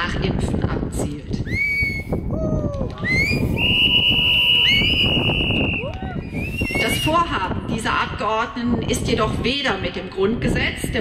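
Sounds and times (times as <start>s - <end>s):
high-pitched whistle tone: 1.5s - 2.2s, 3.0s - 7.2s.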